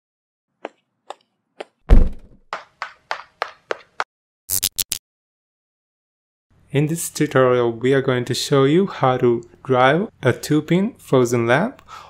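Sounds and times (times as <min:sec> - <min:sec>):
deep thump: 0:01.9 - 0:02.4.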